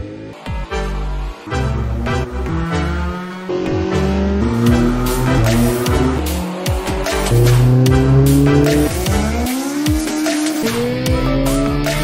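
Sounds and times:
car engine revving: 1.2s - 11.8s
electronic music with steady beat: 1.6s - 12.0s.

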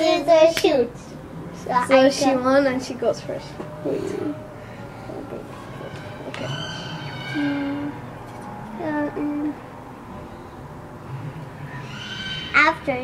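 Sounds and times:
child humming: 3.8s - 4.5s, 7.3s - 8.0s, 8.7s - 9.6s
child's high drawn-out call: 5.8s - 8.0s.

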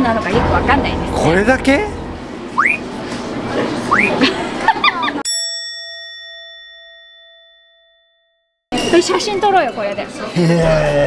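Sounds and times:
bell ding: 0.3s - 2.9s, 5.3s - 9.3s.

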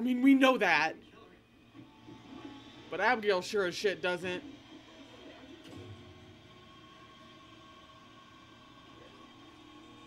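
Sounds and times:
faint soundtrack drone: 0.0s - 10.0s.

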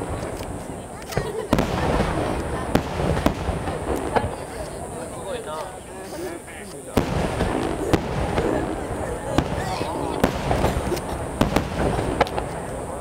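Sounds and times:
crowd voices: 0.0s - 13.0s
firework shells bursting: 0.0s - 13.0s.

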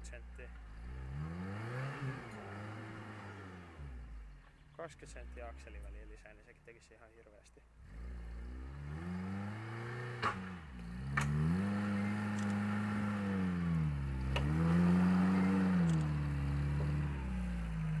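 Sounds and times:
engine working under load: 0.0s - 5.9s, 7.8s - 18.0s.

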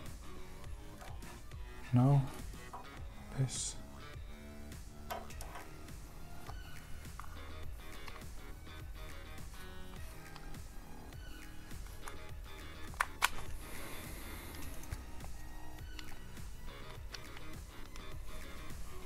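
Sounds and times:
soft background music: 0.0s - 19.0s
plastic parts clicking: 5.1s - 5.8s, 12.0s - 13.6s, 14.5s - 18.1s.

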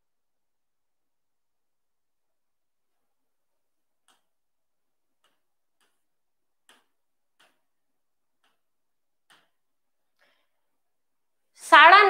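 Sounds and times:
fingertips tapping a touchscreen: 3.9s - 10.4s.

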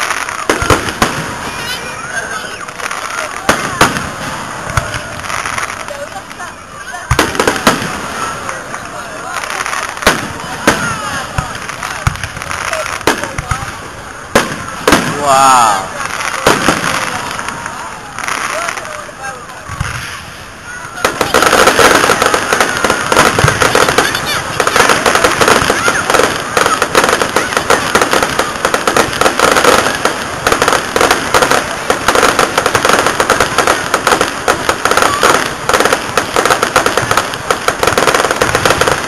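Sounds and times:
fireworks crackling barrage: 0.0s - 39.0s.

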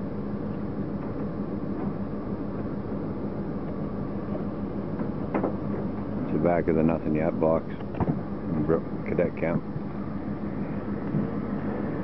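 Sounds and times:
vehicle engine hum: 0.0s - 12.0s
road noise: 0.3s - 12.0s.

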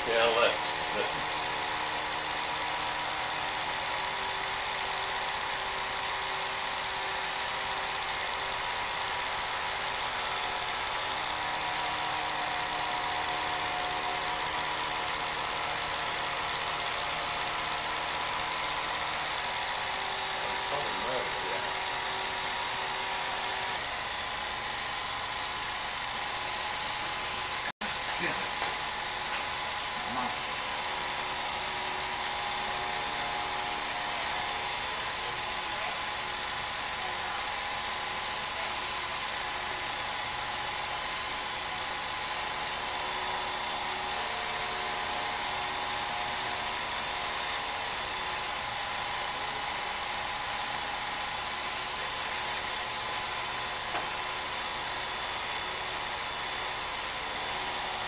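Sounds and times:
film projector whirring and rattling: 0.0s - 58.0s.

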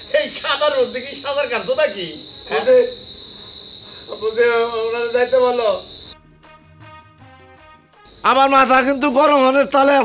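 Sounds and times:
crickets trilling: 0.0s - 6.2s, 8.1s - 10.0s.

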